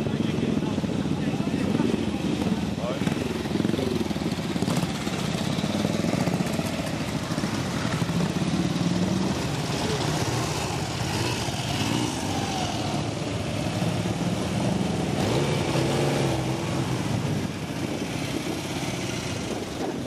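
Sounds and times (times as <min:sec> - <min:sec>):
voices talking: 0:00.0 - 0:15.8
motorcycle engines idling: 0:00.0 - 0:20.0.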